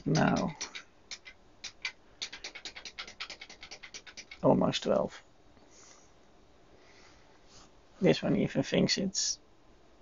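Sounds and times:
rapid key clicks: 0.0s - 5.0s.

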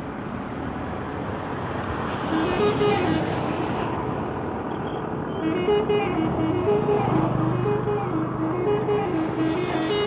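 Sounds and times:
cars passing: 0.0s - 10.0s
auto-rickshaw passing: 0.8s - 10.0s
motorcycles passing: 1.5s - 4.6s, 5.4s - 10.0s.

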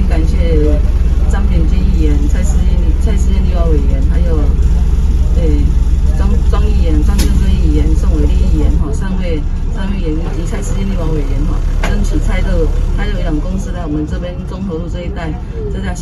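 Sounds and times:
bus engine rumble from inside: 0.0s - 16.0s
people talking: 0.0s - 16.0s.

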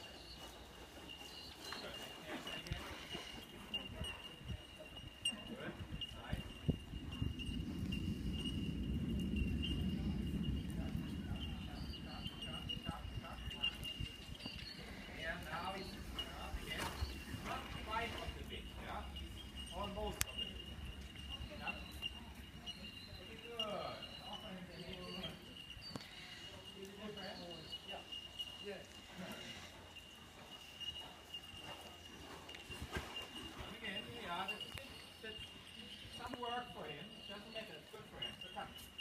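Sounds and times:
hoofbeats on sand: 11.0s - 23.8s, 27.0s - 36.6s
horse hoofbeats on sand: 13.4s - 23.4s.

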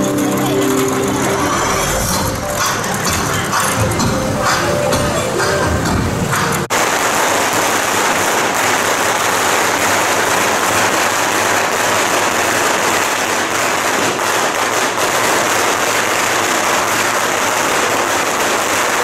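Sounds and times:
firecrackers crackling: 0.0s - 19.0s.

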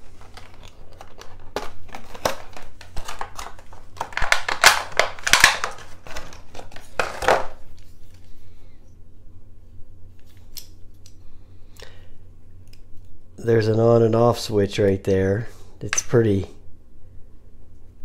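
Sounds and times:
plastic packaging crackling: 0.1s - 7.6s.

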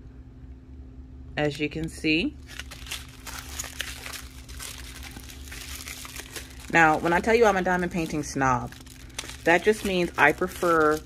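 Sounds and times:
plastic zip bags crinkling: 2.4s - 11.0s.

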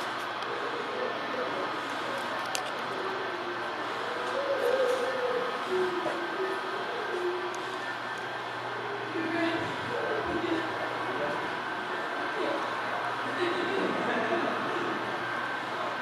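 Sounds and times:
distant people talking: 0.0s - 16.0s
steady low hum: 0.0s - 16.0s.

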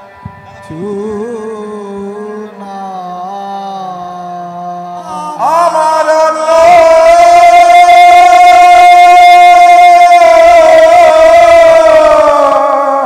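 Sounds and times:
devotional singing: 0.5s - 13.0s.

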